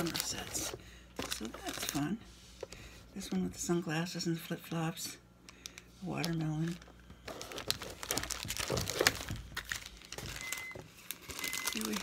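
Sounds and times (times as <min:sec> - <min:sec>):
plastic packages crinkling: 0:00.0 - 0:02.2, 0:05.6 - 0:12.0.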